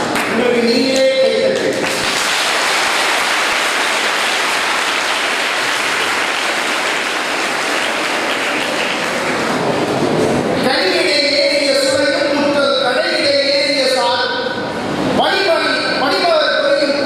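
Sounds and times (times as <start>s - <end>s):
audience applause: 1.7s - 10.1s.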